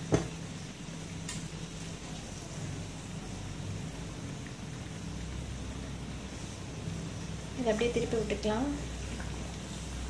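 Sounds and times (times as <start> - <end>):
food sizzling in oil: 0.0 - 10.0.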